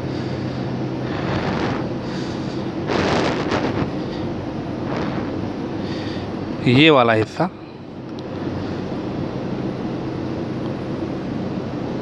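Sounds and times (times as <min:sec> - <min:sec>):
machinery droning hum: 0:00.0 - 0:12.0
loud rushing swells: 0:01.0 - 0:02.1, 0:02.8 - 0:05.5.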